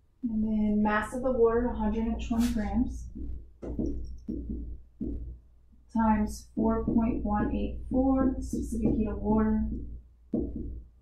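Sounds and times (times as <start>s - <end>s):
marker writing on whiteboard: 1.8s - 5.4s, 6.0s - 11.0s.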